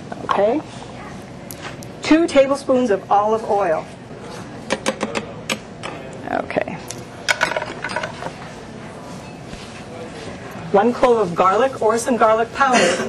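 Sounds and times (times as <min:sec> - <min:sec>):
kitchen utensils clinking: 0:07.3 - 0:08.3.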